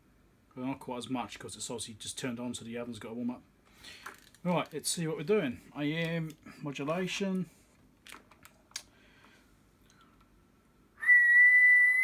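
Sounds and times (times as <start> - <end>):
person whistling high note: 11.0 - 12.0.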